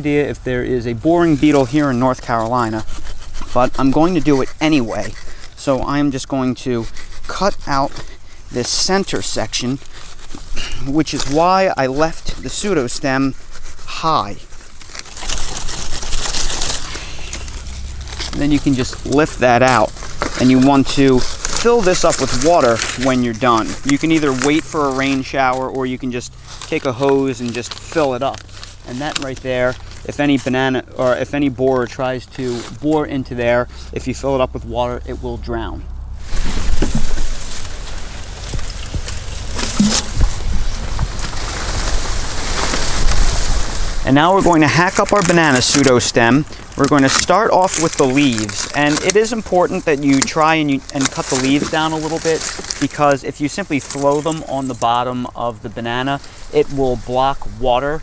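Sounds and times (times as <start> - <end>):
hand saw rasping through wet stem: 1.2 - 30.1
water pouring from a bucket: 14.7 - 31.0.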